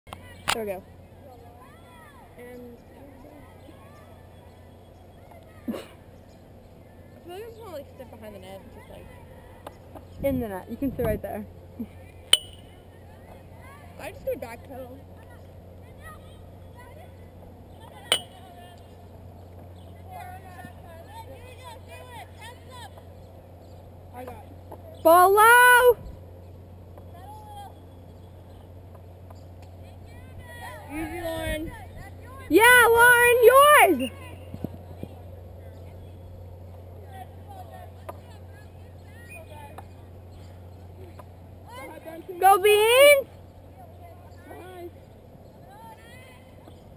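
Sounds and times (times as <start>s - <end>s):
distant players calling: 0.1s - 46.9s
steady low hum: 0.1s - 46.9s
metallic clink: 12.3s - 12.8s, 18.1s - 18.4s.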